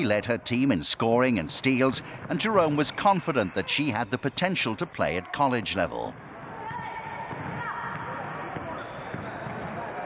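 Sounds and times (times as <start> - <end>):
steady hum of court noise: 0.0 - 10.0
sneakers squeaking on court: 6.2 - 10.0.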